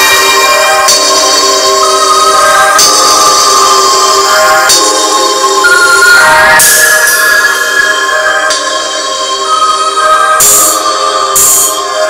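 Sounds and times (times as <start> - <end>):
electronic music through car speaker: 0.0 - 12.0.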